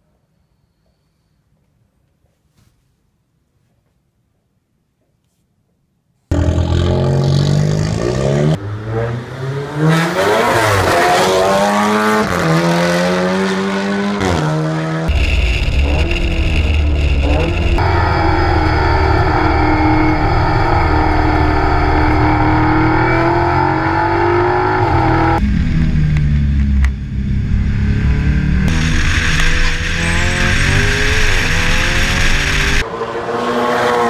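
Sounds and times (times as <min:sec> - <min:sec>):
race car engine accelerating: 0:06.3 - 0:34.0.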